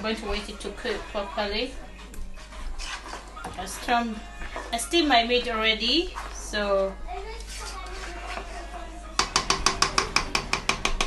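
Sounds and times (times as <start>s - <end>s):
spatula stirring thick sauce: 0.0s - 10.7s
spatula knocking against pot: 9.2s - 11.0s.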